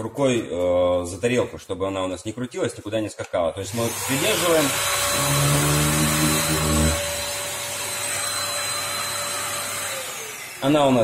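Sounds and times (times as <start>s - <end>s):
orbital sander whining: 3.7s - 11.0s.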